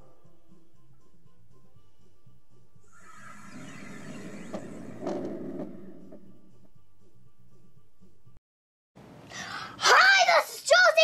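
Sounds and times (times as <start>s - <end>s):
whoosh falling in pitch: 2.9s - 6.5s
noisy burst: 2.9s - 6.6s.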